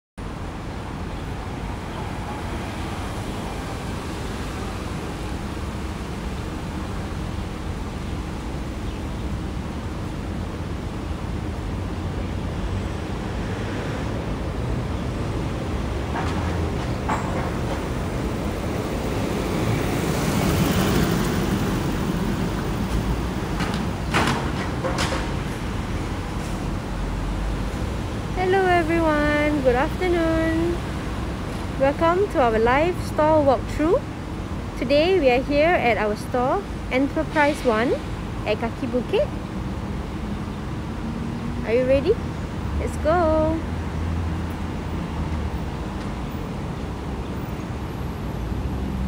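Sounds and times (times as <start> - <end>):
traffic noise: 0.2 - 49.0
vehicle passing: 17.8 - 23.6.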